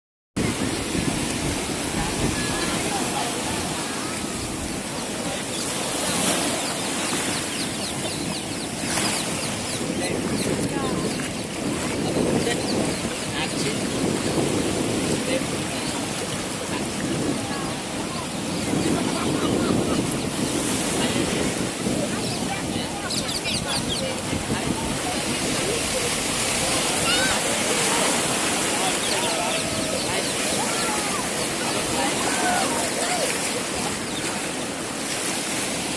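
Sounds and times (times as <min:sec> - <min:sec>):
ocean surf washing in: 0:00.4 - 0:35.9
people talking faintly: 0:15.0 - 0:35.7.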